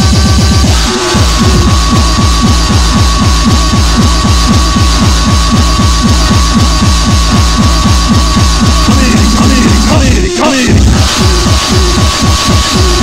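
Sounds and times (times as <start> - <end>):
distorted kick drum beat: 0.0 - 13.0
steady high tone: 0.6 - 13.0.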